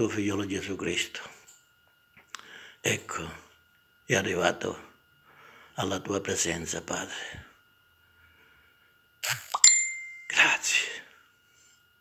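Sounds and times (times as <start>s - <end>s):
high bell-like ding: 9.5s - 10.5s.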